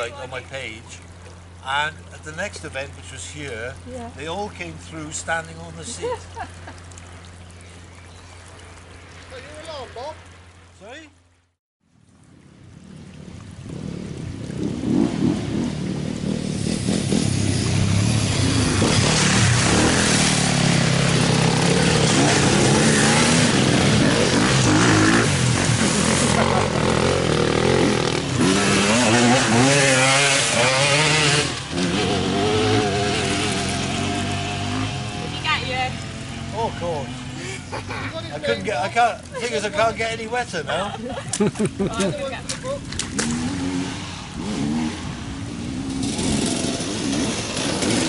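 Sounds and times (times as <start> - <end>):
motorcycle engines revving: 13.6 - 48.0.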